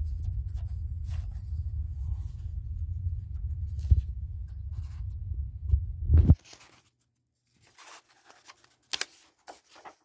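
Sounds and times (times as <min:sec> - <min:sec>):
paper rustling: 0:00.0 - 0:02.4, 0:06.4 - 0:10.0.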